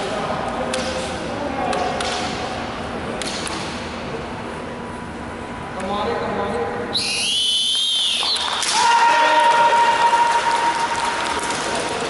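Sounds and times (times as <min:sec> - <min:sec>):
people shouting kiai cries: 0:08.6 - 0:10.7.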